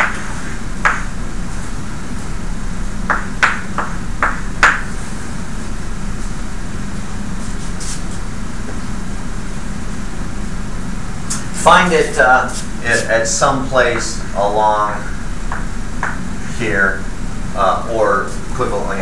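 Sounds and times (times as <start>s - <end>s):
room hum: 0.0s - 19.0s.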